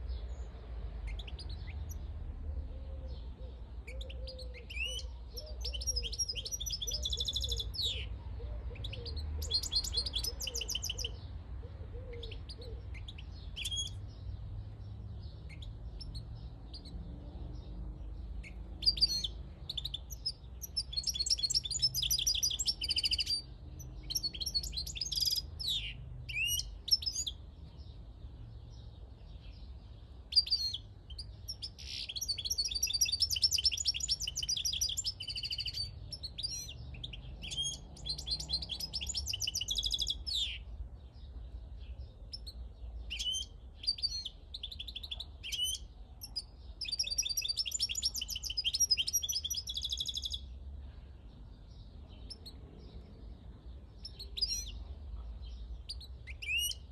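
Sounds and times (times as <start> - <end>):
goldfinch singing: 3.1 - 8.2, 8.8 - 11.2, 18.3 - 27.4, 30.3 - 40.7, 42.3 - 50.5, 54.0 - 54.8, 55.5 - 56.9.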